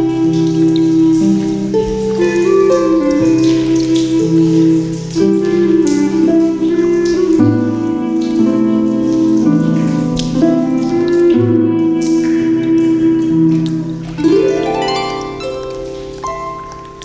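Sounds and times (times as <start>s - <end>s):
flute long notes: 0.0s - 17.0s
harp accompaniment: 0.0s - 17.0s
rain and dripping: 0.0s - 17.0s.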